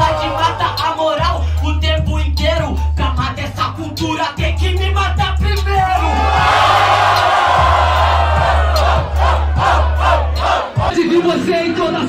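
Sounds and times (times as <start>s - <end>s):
crowd shouting and cheering: 0.0s - 1.4s, 5.6s - 12.0s
hip-hop beat: 0.0s - 12.0s.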